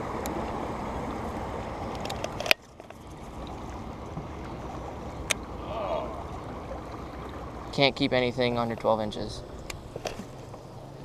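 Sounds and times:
water sloshing around boat hull: 0.0 - 11.0.

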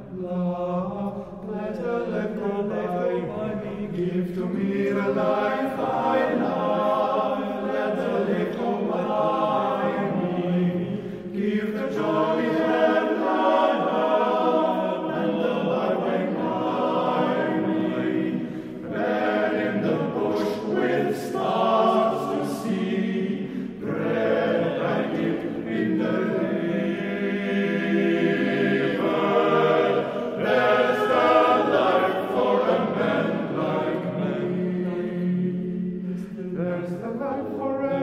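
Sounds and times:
men's choir singing: 0.0 - 38.0
singers breathing: 10.8 - 11.3, 18.4 - 18.8, 23.4 - 23.8.

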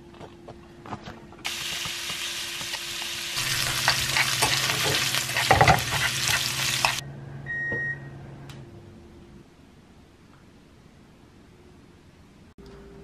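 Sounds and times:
chopsticks scraping a pan: 1.5 - 7.0
meat sizzling in a frying pan: 1.5 - 7.0.

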